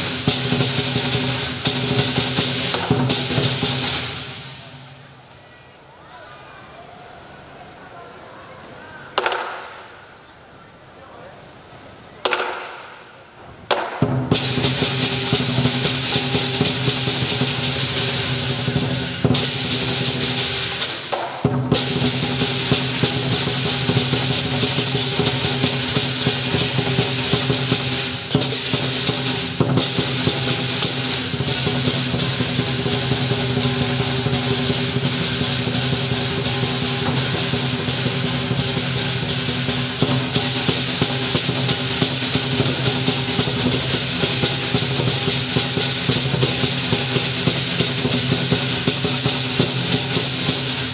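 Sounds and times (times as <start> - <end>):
big drum: 0.0 - 5.1, 13.7 - 50.9
clashing cymbals: 0.0 - 5.1, 13.9 - 50.9.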